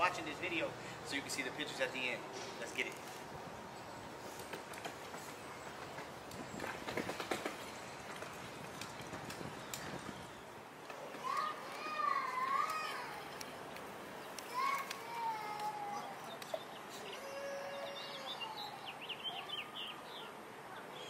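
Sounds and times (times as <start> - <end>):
outdoor background noise: 0.0 - 21.0.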